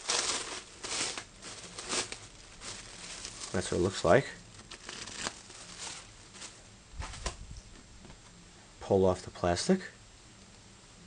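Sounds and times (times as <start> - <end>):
plastic sheets rustling: 0.0 - 7.4.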